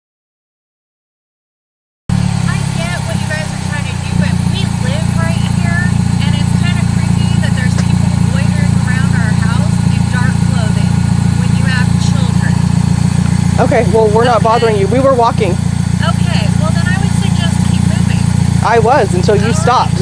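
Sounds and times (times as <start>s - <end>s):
car engine idling: 2.1s - 20.0s
faint voices talking: 2.4s - 20.0s.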